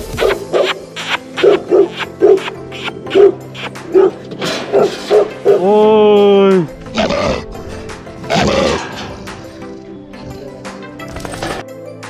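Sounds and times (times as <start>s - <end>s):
large dog barking: 0.2s - 5.7s.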